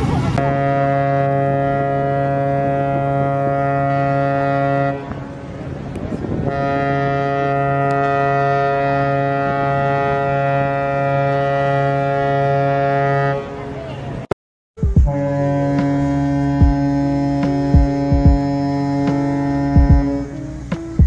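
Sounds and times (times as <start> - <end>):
deep ship horn blast: 0.1 - 13.9, 14.8 - 21.0.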